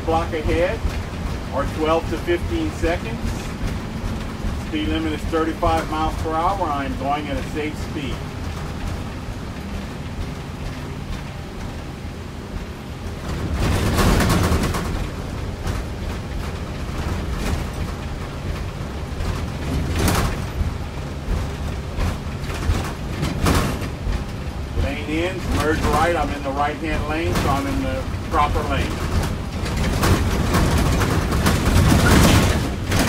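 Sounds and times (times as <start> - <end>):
bus engine running: 0.0 - 33.0
road rumble: 0.0 - 33.0
sharp knocks and rattles: 0.0 - 33.0.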